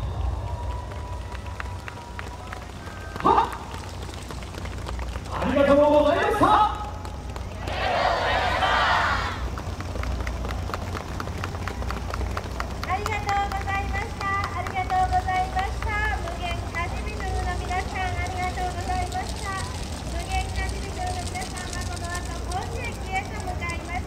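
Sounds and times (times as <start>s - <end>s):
low engine hum: 0.0s - 24.0s.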